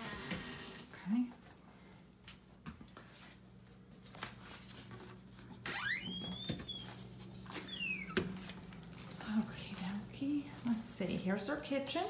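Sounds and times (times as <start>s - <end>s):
door hinge squeaking: 7.7s - 8.2s.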